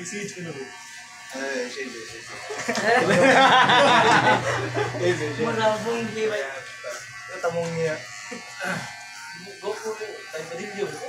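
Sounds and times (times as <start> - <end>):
electric hair clippers buzzing: 0.0 - 11.0.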